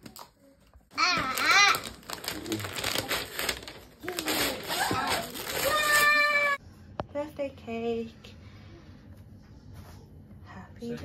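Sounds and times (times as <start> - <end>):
wrapping paper rustling: 0.9 - 6.6.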